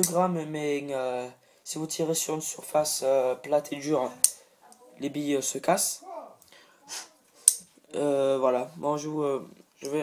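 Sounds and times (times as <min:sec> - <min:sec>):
voice: 0:07.9 - 0:10.0.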